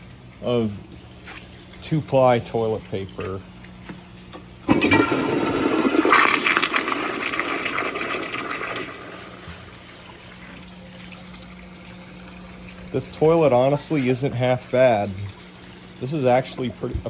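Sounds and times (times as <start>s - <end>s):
toilet flushing: 4.6s - 17.0s.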